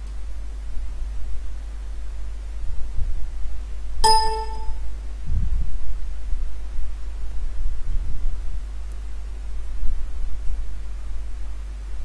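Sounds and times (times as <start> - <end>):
steady low hum: 0.0 - 6.4
bright ding: 4.0 - 4.8.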